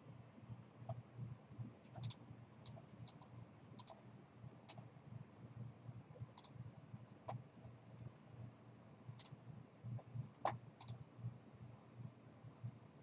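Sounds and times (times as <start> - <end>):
low steady hum: 0.0 - 13.0
computer mouse clicks: 0.6 - 1.0, 1.9 - 4.8, 6.2 - 8.1, 8.9 - 9.4, 10.0 - 11.1, 11.9 - 12.9.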